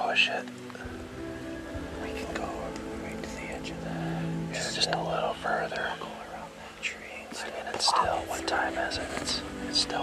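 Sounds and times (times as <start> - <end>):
person whispering: 2.0 - 10.0.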